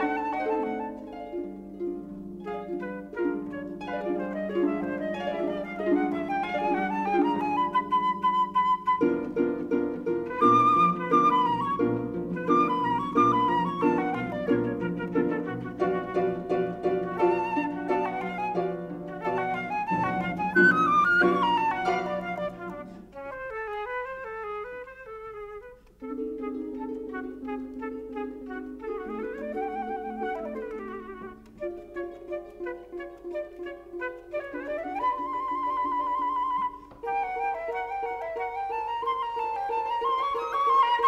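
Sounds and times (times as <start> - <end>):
flute melody: 0.0 - 41.0
harp chords: 26.0 - 36.9.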